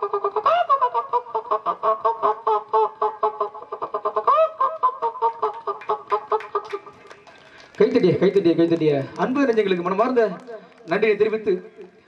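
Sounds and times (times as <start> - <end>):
person imitating poultry calls: 0.0 - 6.1.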